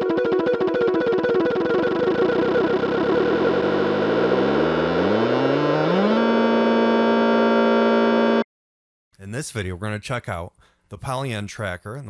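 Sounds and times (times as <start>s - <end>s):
pulsing electronic synth music: 0.1s - 8.4s.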